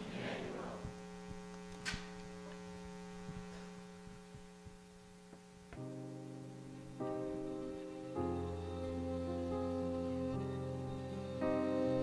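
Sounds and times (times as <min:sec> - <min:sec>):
mains hum: 0:00.0 - 0:12.0
sustained keyboard chord: 0:05.8 - 0:12.0.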